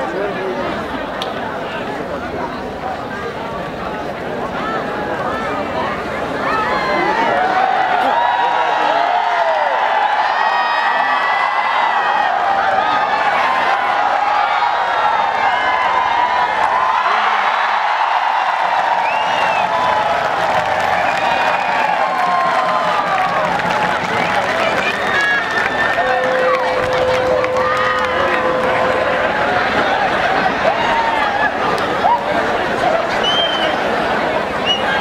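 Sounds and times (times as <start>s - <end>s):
crowd shouting and cheering: 0.0s - 35.0s.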